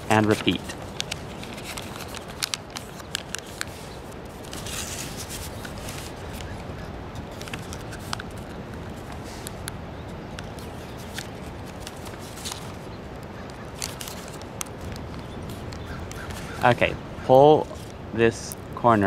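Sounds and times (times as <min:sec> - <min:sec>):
paper crinkling while folded: 0:00.0 - 0:09.7, 0:10.3 - 0:16.8
paper rustle: 0:00.0 - 0:09.7, 0:10.4 - 0:16.8
steady background hiss: 0:00.0 - 0:19.0.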